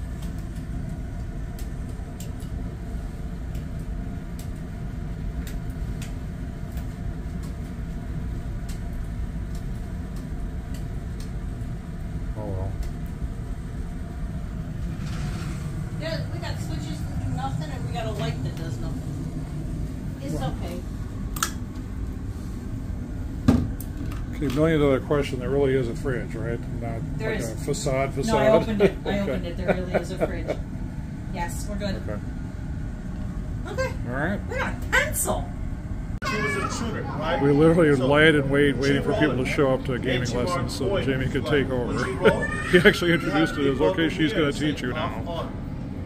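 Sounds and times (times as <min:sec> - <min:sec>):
air handling hum: 0:00.0 - 0:46.0.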